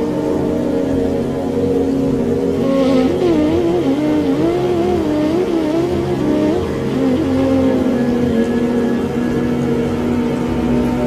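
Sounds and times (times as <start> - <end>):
low rushing noise: 0.0 - 11.0
sustained drone: 0.0 - 11.0
slow flute melody: 2.6 - 11.0.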